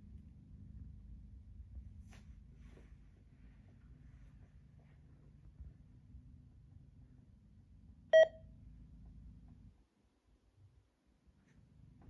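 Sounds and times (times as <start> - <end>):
faint low hum: 0.0 - 12.0
short electronic beep: 8.2 - 8.4.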